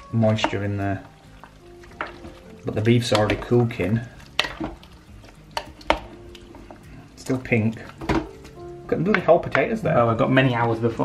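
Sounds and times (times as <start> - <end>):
spoon stirring stew: 0.0 - 9.3.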